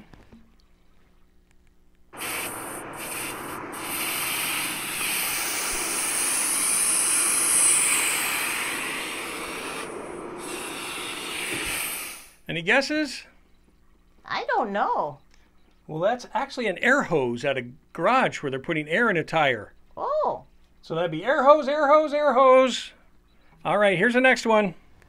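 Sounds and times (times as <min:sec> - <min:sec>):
compressed air hissing: 0:02.2 - 0:12.4.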